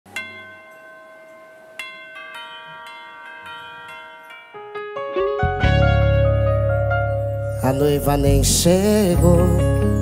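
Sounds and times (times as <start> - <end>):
electronic keyboard bell-like notes: 0.1 - 10.0.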